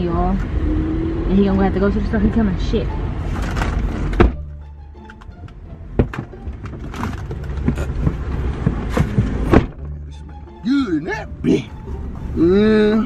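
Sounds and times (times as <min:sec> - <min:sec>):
background music: 0:02.0 - 0:13.0
car door thumps: 0:04.1 - 0:04.5, 0:05.9 - 0:10.0.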